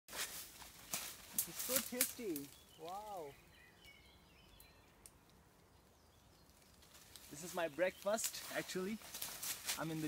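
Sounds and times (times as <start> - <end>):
faint high bird chirps: 2.2 - 6.8.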